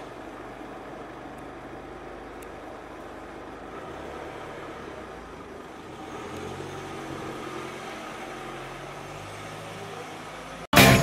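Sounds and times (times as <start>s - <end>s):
car engine idling: 0.0s - 6.0s
faint street noise: 0.0s - 11.0s
loud music: 10.7s - 11.0s.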